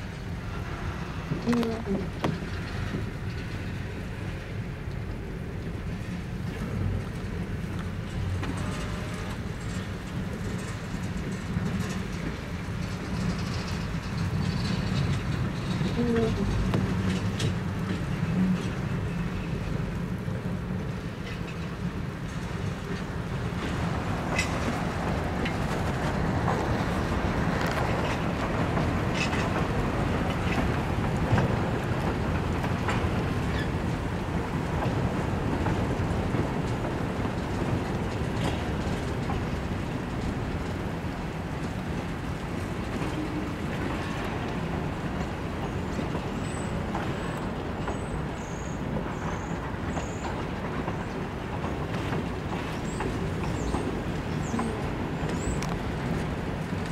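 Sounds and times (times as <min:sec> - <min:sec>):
steel wheels rumbling on rails: 0:00.0 - 0:56.9
wheels clicking over rail joints: 0:00.0 - 0:56.9.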